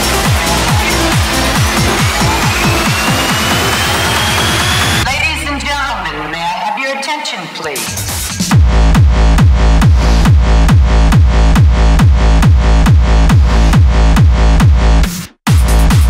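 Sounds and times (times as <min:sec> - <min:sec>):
kick drum: 0:00.0 - 0:05.1, 0:08.4 - 0:16.0
driving bass line: 0:00.0 - 0:06.6, 0:07.8 - 0:16.0
trance music: 0:00.0 - 0:16.0.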